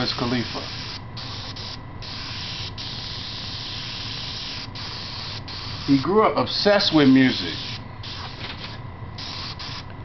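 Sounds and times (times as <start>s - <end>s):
airbrush spraying hiss: 0.0s - 6.2s, 6.8s - 9.8s.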